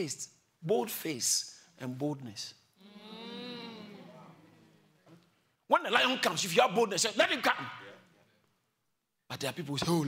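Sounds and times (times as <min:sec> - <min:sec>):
person humming: 0:02.8 - 0:04.2.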